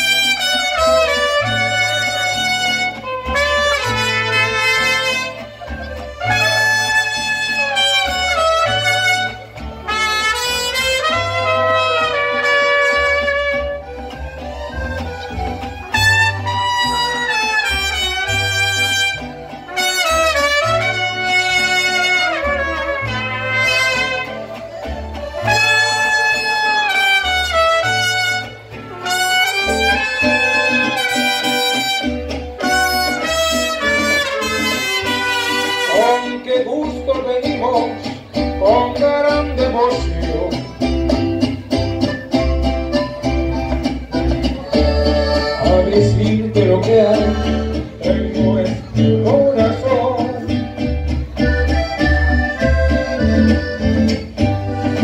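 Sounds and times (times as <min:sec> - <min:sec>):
trumpets playing melody: 0:00.0 - 0:37.0, 0:48.8 - 0:55.0
strummed guitars: 0:00.0 - 0:55.0
walking bass line: 0:00.0 - 0:55.0.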